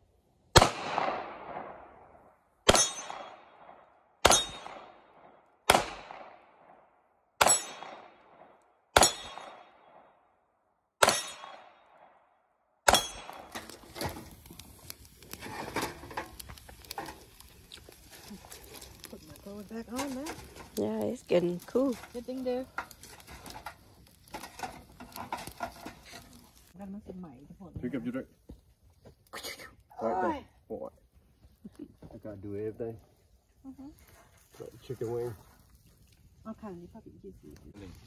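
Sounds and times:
wood fire crackling: 0.0 - 9.8, 11.0 - 12.0, 12.8 - 38.0
fire pops and snaps: 0.5 - 6.7, 7.4 - 9.8, 11.0 - 12.0, 12.8 - 30.2, 33.9 - 38.0.

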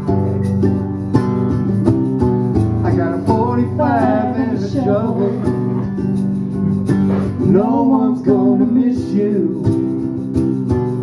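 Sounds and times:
acoustic guitar strummed: 0.0 - 11.0
tube shaker: 0.0 - 11.0.

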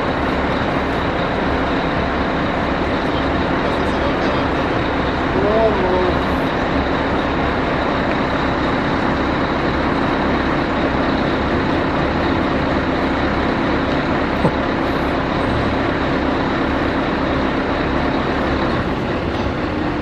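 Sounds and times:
diesel truck engine running: 0.0 - 20.0
hydraulic high whine: 0.0 - 20.0.

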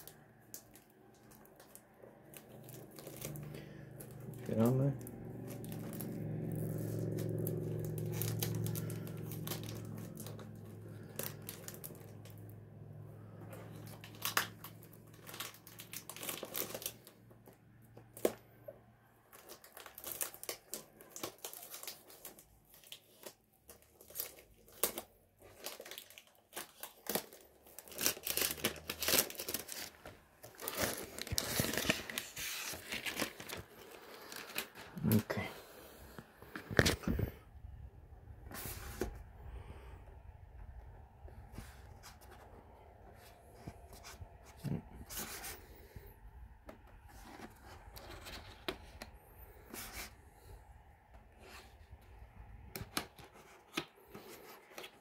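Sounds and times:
plastic film tearing and crumpling: 0.0 - 12.6, 13.6 - 17.2, 19.2 - 35.2.

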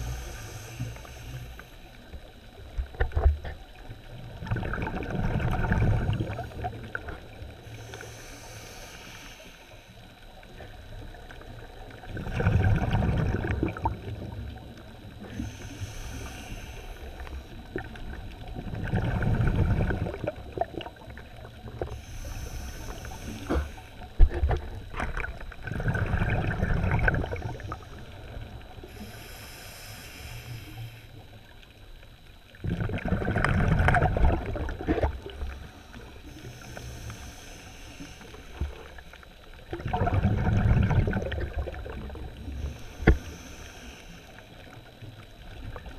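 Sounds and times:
regulator inhale hiss: 0.0 - 2.8, 5.7 - 12.0, 13.8 - 18.5, 19.2 - 25.3, 27.2 - 31.8, 34.0 - 39.8, 41.1 - 45.8
exhaled bubbles rushing: 4.2 - 7.3, 12.0 - 14.5, 17.7 - 21.9, 24.5 - 28.6, 32.6 - 35.5, 39.6 - 42.4.

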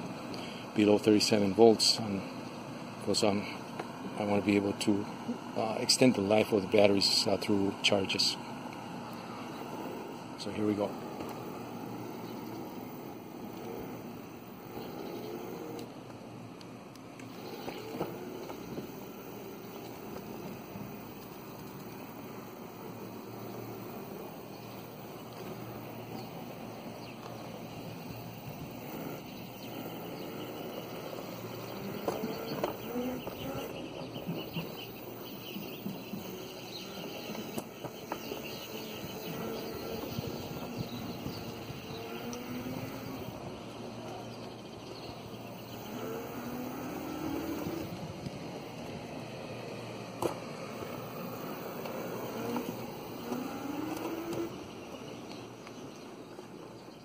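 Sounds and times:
steady rolling noise: 0.0 - 57.0
electric motor whine: 8.1 - 56.8.

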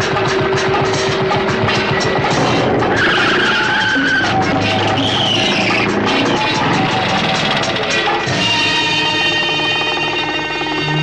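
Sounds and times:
film background music: 0.0 - 11.0
car tyre screech: 2.6 - 6.6.

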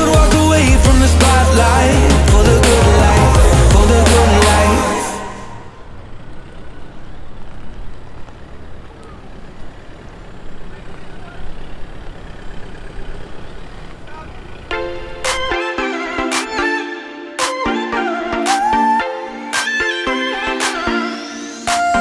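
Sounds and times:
music: 0.0 - 5.7, 14.7 - 22.0
pickup truck engine running: 0.0 - 15.6.

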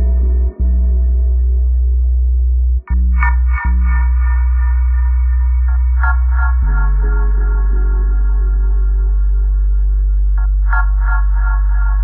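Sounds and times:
electronic dub music: 0.0 - 12.0.

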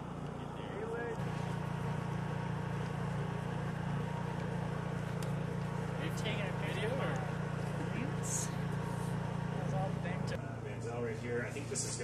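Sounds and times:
portable generator running: 0.0 - 10.4.

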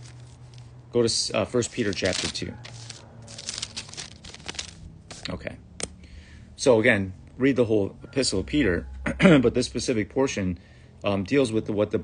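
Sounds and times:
paper pages rustling: 0.0 - 0.8, 1.4 - 5.3.

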